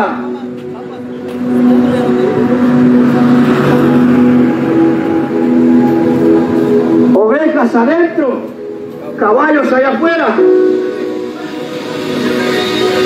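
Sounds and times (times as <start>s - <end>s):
road noise: 0.0s - 13.0s.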